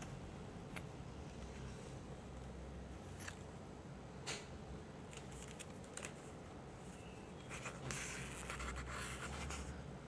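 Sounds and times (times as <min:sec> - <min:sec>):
paper booklet rustling: 0:05.1 - 0:06.3, 0:07.5 - 0:09.8.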